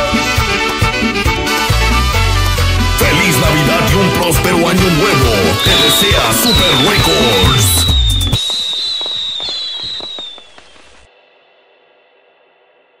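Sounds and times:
merengue music: 0:00.0 - 0:08.4
high steady whistle: 0:03.0 - 0:11.1
firecracker pops: 0:05.6 - 0:11.1.

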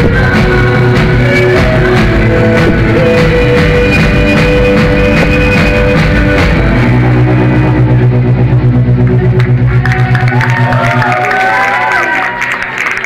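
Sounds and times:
audience cheering: 0:09.4 - 0:13.0.

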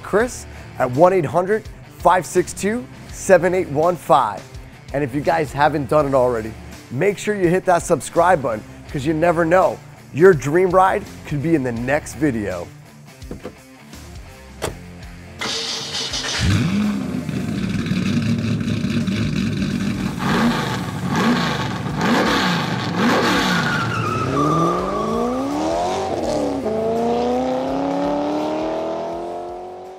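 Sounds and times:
car engine revving and accelerating: 0:16.0 - 0:29.9.

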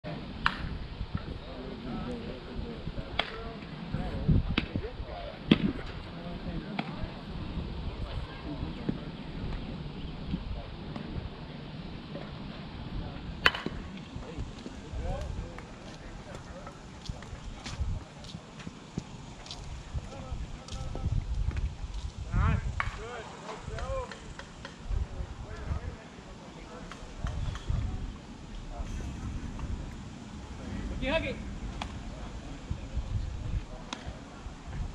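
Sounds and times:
distant voices of players: 0:00.1 - 0:21.8, 0:22.7 - 0:34.9
wind rumble on microphone: 0:00.1 - 0:26.0, 0:26.8 - 0:34.9.

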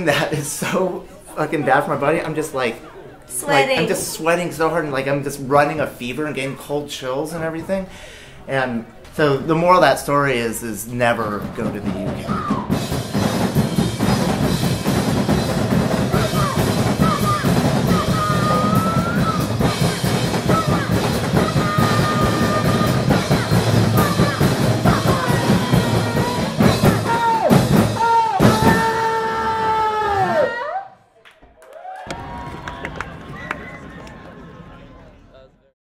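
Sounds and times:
drum kit pounding: 0:10.8 - 0:29.4
group vocals holding long notes: 0:16.1 - 0:28.8.

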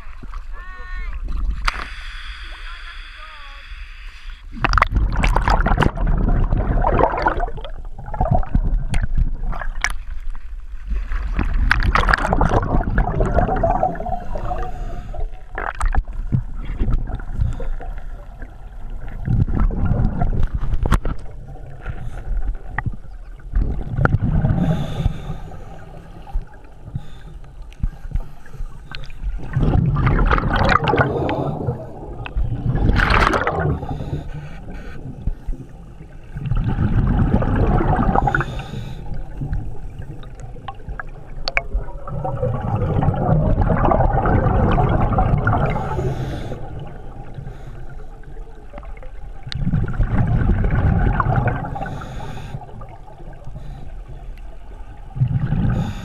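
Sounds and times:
scuba regulator breathing: 0:01.6 - 0:04.6, 0:13.9 - 0:15.5, 0:24.4 - 0:29.6, 0:30.6 - 0:32.3, 0:33.4 - 0:36.0, 0:38.0 - 0:40.1, 0:45.6 - 0:48.3, 0:51.6 - 0:54.3, 0:55.5 - 0:56.0
exhaled bubbles gurgling: 0:04.5 - 0:56.0.

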